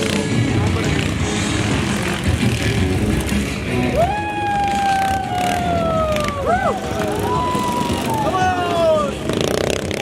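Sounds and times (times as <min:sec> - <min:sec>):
motorcycle engines revving: 0:00.0 - 0:10.0.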